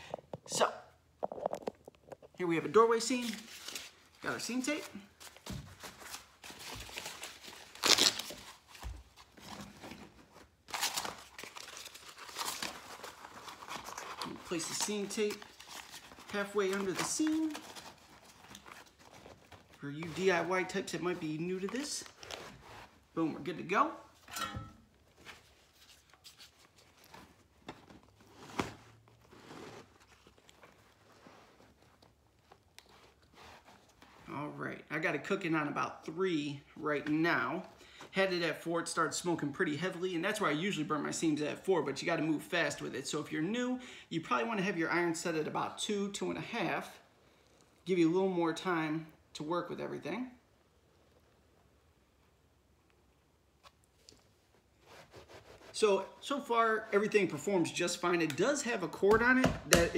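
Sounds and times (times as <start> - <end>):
tape crinkling and tearing: 3.0 - 23.0, 25.1 - 34.2.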